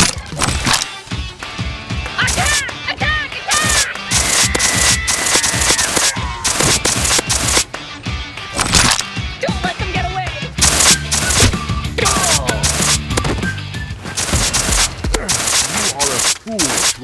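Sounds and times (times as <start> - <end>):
background music: 0.0 - 17.0
gunfire sound effects: 3.5 - 7.7, 10.6 - 13.5, 14.1 - 17.0.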